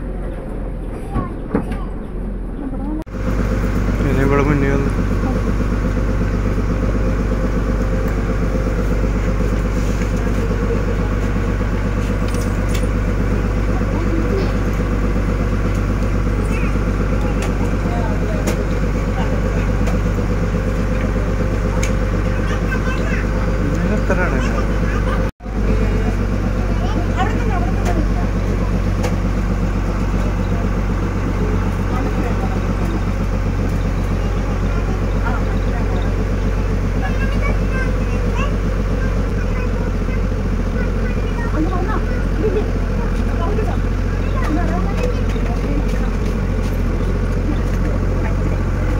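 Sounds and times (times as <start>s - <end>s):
boat engine droning: 0.0s - 48.9s.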